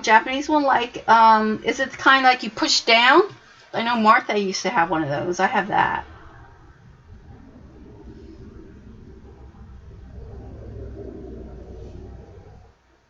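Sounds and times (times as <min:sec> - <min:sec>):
low rumble: 0:04.7 - 0:13.0.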